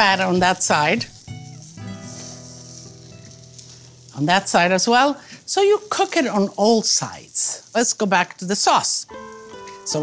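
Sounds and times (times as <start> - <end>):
soft background music: 0.0 - 4.7, 8.8 - 10.0
steak sizzling on grill: 0.0 - 10.0.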